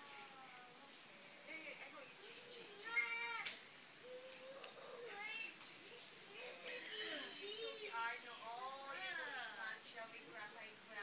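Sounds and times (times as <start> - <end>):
child whimpering: 4.0 - 5.5.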